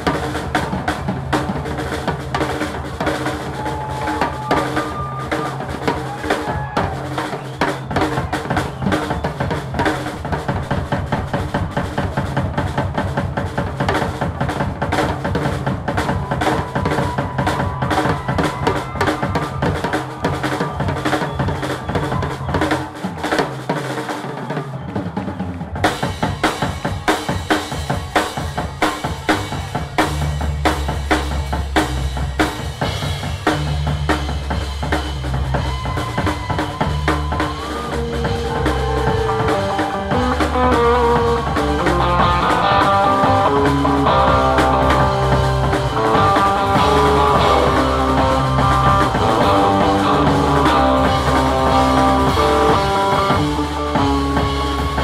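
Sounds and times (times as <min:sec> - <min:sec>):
bass drum: 0:05.9 - 0:22.6, 0:26.0 - 0:55.0
rising melodic lines: 0:35.7 - 0:54.9
low bass line: 0:37.0 - 0:55.0.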